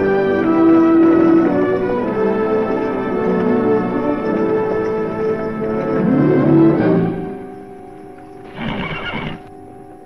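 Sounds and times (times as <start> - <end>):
orchestral music: 0.0 - 9.9
horse whinnying: 8.4 - 9.5.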